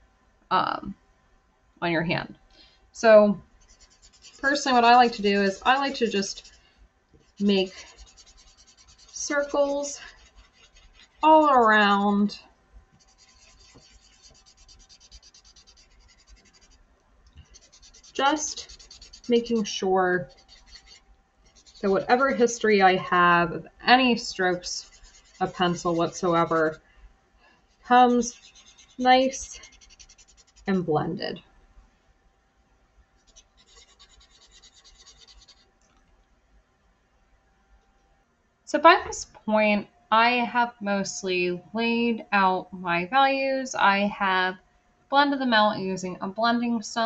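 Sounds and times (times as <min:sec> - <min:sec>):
blending stump rubbing on paper: 0:03.6 - 0:06.6, 0:07.2 - 0:12.1, 0:13.0 - 0:16.8, 0:17.4 - 0:22.7, 0:24.4 - 0:26.8, 0:27.9 - 0:30.7, 0:33.3 - 0:35.6.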